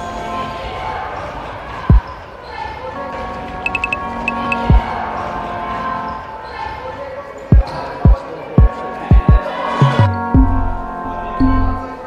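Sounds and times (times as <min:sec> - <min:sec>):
hall noise: 0:03.6 - 0:05.2.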